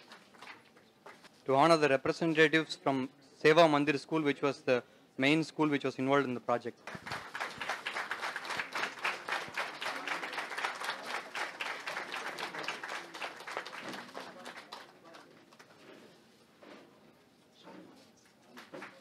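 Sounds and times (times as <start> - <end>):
audience applauding: 6.9 - 15.7.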